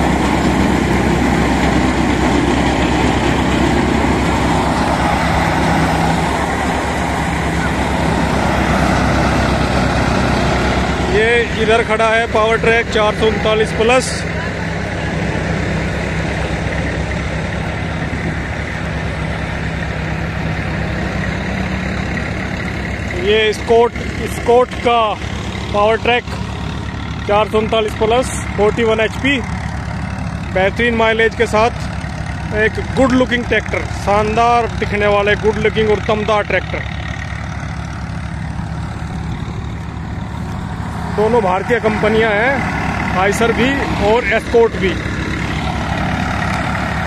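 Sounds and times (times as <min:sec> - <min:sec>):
thresher machine noise: 0:00.0 - 0:47.0
tractor engine running: 0:00.0 - 0:47.0.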